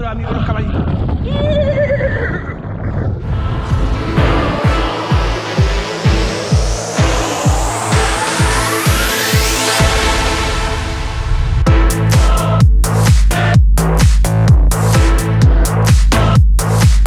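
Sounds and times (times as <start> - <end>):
rising sweep: 3.1 - 13.1
electronic music: 3.2 - 17.0
kick drum beating: 11.7 - 17.0.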